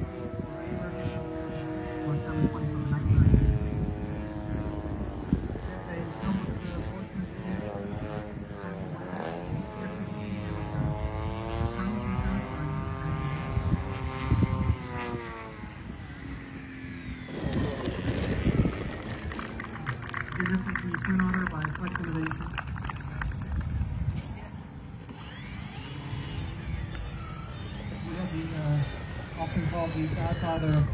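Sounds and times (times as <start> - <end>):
model airplane motors whining: 0.0 - 20.7, 24.8 - 30.9.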